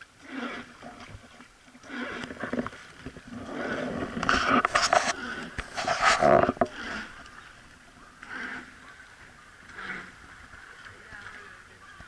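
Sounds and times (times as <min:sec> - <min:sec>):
oar strokes splashing water: 0:00.0 - 0:12.0.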